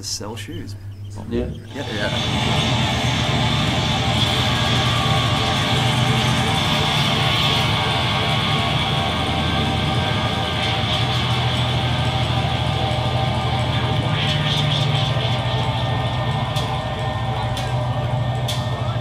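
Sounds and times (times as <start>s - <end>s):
low droning bass: 0.0s - 19.0s
noise rock band playing: 1.7s - 19.0s.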